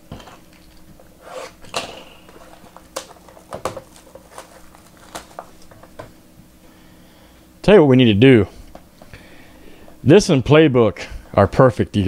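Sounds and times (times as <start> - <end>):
plastic rustling: 0.0 - 6.2.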